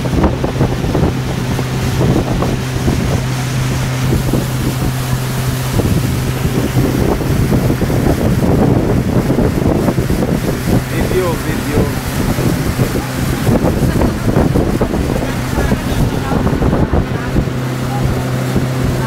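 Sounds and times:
motorboat engine humming: 0.0 - 19.0
water rushing past hull: 0.0 - 19.0
wind buffeting microphone: 0.0 - 19.0.

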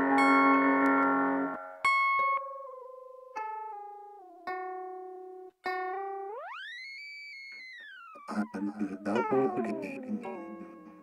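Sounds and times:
bell-like keyboard chord: 8.2 - 11.0.

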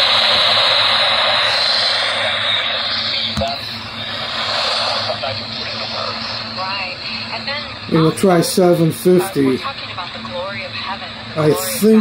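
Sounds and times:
radio static hiss: 0.0 - 12.0
faint radio talk: 4.8 - 12.0.

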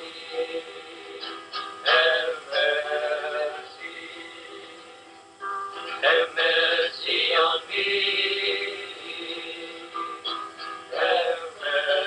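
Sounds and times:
person singing a hymn: 0.0 - 5.1, 5.8 - 12.0
musical accompaniment: 0.0 - 12.0.

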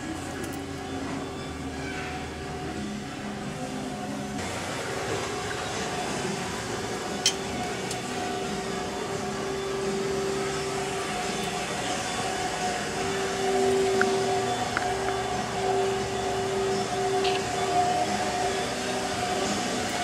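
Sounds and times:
machine hum with low drone: 0.0 - 20.0.

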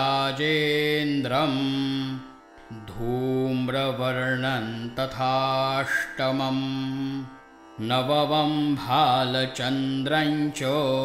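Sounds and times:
man chanting melodically: 0.0 - 11.0.

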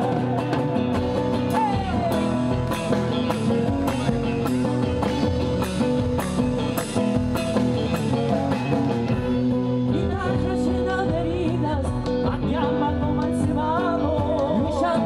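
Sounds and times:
acoustic guitar: 0.0 - 15.0
drum kit beat: 0.0 - 15.0
electric guitar: 0.0 - 15.0.

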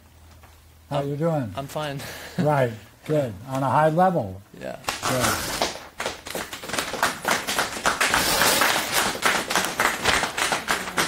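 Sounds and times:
paper ripping and rustling: 4.9 - 5.8.

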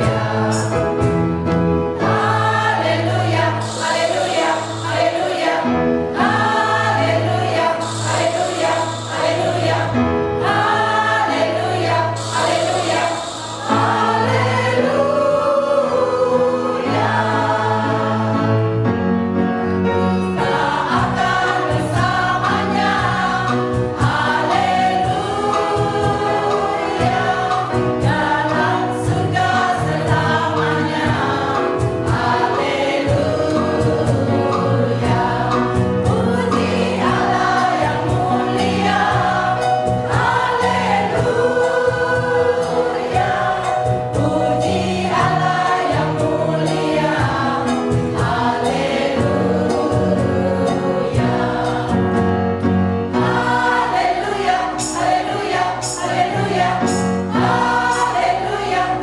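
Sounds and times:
mixed choir singing: 0.0 - 19.0, 20.1 - 59.0.

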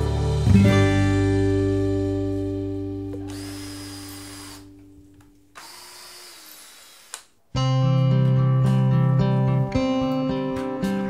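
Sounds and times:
guitar music: 0.0 - 5.6, 7.5 - 11.0
drill click: 3.1 - 7.5
cordless drill into wood: 3.2 - 4.8, 5.5 - 7.5.

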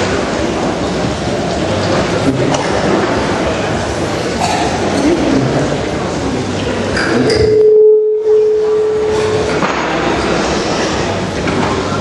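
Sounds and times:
crowd chatter: 0.0 - 12.0
steady pure tone: 0.0 - 12.0.

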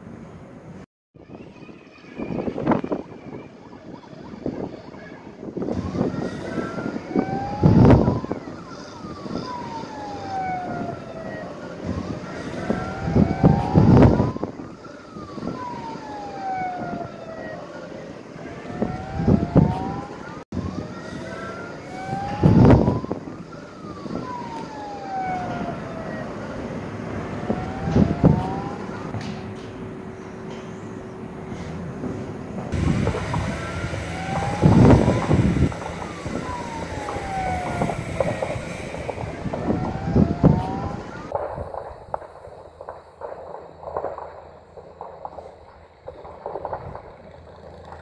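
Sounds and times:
emergency vehicle siren wailing: 1.2 - 48.0
loud low noise bursts: 32.8 - 40.8.

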